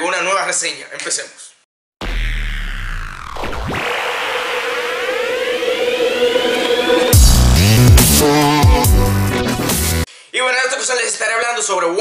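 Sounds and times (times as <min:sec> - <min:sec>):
electronic riser sweep: 0:02.0 - 0:09.8.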